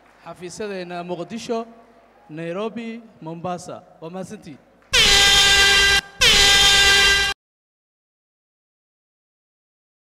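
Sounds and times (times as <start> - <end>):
horn blasts: 4.9 - 7.4.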